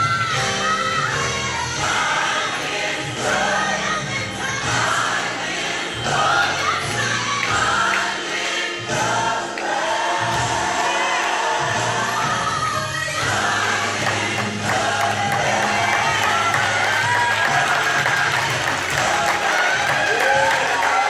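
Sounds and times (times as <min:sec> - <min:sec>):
gospel choir singing: 0:00.0 - 0:21.0.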